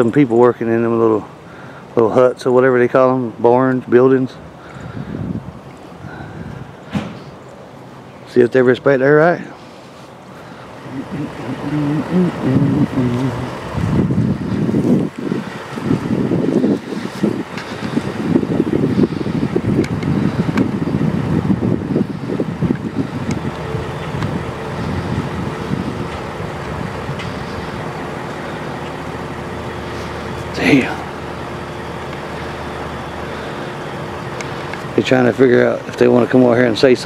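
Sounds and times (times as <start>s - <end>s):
vehicle engine running: 0.0s - 37.0s
wind noise on microphone: 4.7s - 7.3s, 10.9s - 28.1s.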